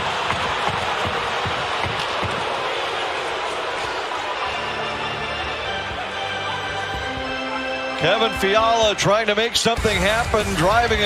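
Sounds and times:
arena crowd din: 0.0 - 11.0.

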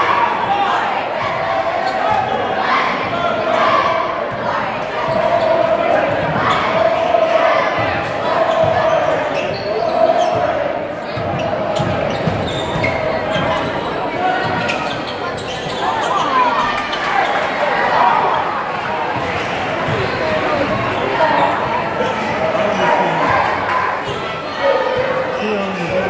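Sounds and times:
echoing crowd voices: 0.0 - 26.0.

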